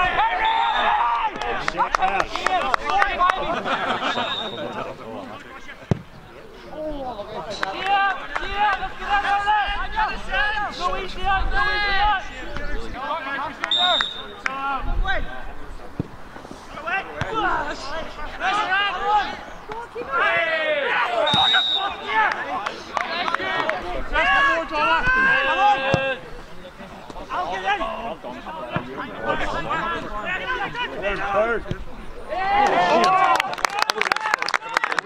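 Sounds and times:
players shouting: 0.0 - 15.4, 16.7 - 35.0
referee's whistle blasts: 4.0 - 4.7, 13.7 - 14.4, 21.2 - 22.1.

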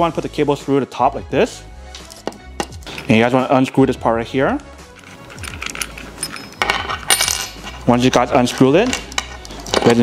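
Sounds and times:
small metal parts clinking: 4.9 - 10.0.

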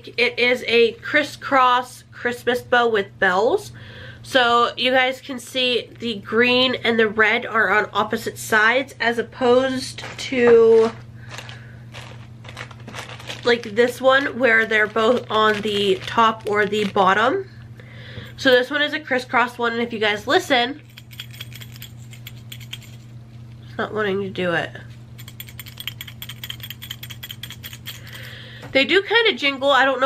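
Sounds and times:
steady low hum: 0.0 - 30.0
small jingle bells shaken: 20.8 - 23.1, 25.2 - 28.4.

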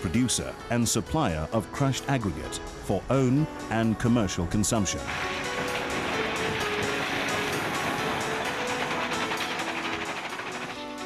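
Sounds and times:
faint background music: 0.0 - 8.6
rocks clattering into hopper: 5.0 - 11.0.

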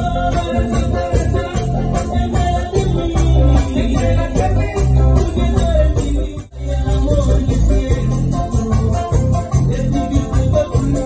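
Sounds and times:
plucked lead guitar melody: 0.0 - 11.0.

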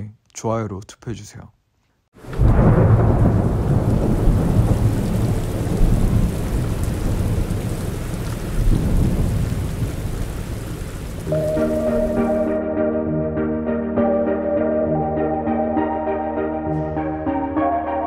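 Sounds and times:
steady rain: 2.2 - 12.6
thunderclap rumbling: 2.2 - 12.6
held synth chords: 11.3 - 18.0.

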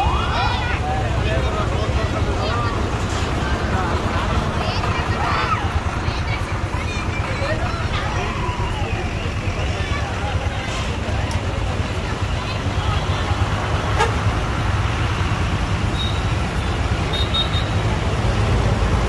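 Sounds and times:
lorry engines in road traffic: 0.0 - 19.0
people talking: 0.0 - 19.0.

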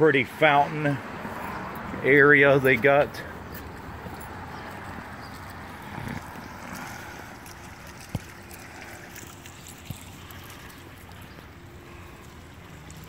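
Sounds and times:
fountain water running onto pebbles: 3.8 - 13.0.

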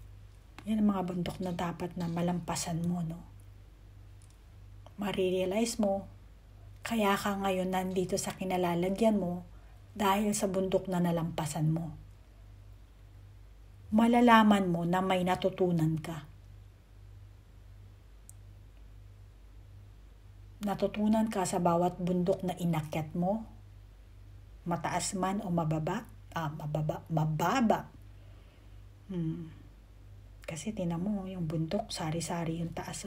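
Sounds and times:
low electrical hum: 0.0 - 33.0
faint high-pitched click: 18.2 - 18.5.

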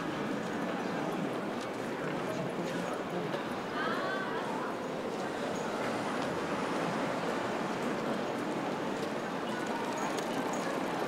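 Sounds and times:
crowd of pedestrians: 0.0 - 11.0.

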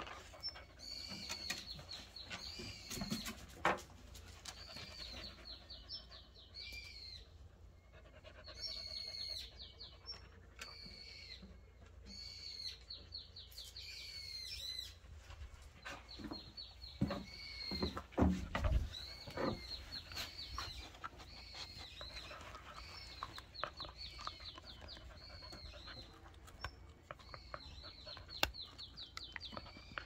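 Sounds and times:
songbird singing: 0.0 - 30.0.

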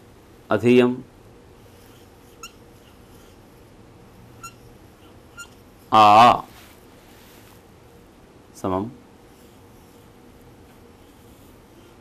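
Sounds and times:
marker squeaking on a whiteboard: 1.9 - 3.4, 4.4 - 5.6.

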